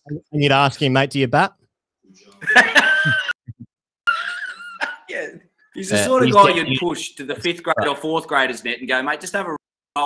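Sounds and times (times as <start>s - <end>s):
man's high-pitched laugh: 2.4s - 3.5s, 4.1s - 5.1s.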